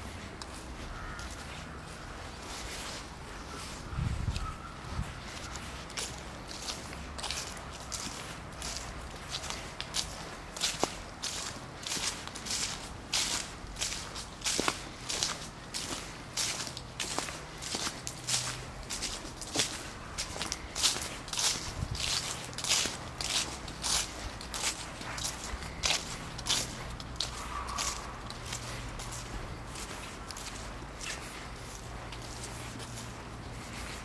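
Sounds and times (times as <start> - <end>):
footsteps on leaves and grass: 0.0 - 34.0.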